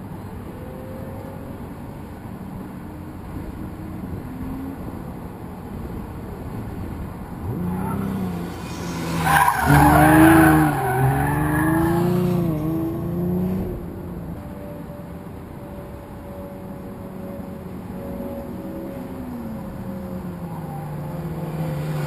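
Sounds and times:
car engine revving: 0:07.4 - 0:14.0
tyres squealing: 0:07.6 - 0:12.3.

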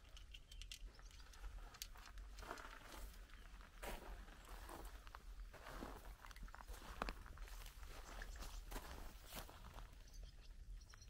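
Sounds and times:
faint footsteps: 0:01.2 - 0:10.1.

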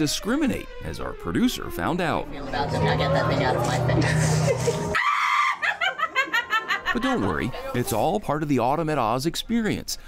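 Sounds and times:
music: 0:02.4 - 0:05.0
woman cackling: 0:04.0 - 0:07.8.

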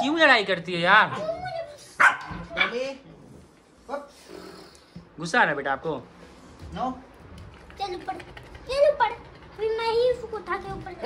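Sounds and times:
puppy barking angrily: 0:02.0 - 0:02.8.

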